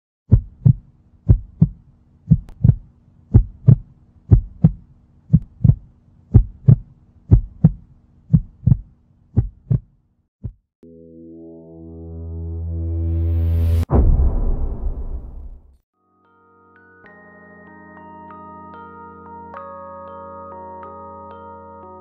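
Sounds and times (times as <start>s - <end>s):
heartbeat thumps: 0.3s - 10.6s.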